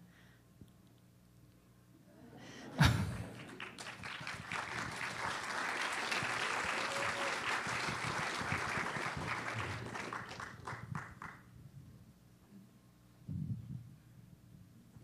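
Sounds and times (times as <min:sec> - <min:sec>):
audience applauding: 0:02.8 - 0:11.4.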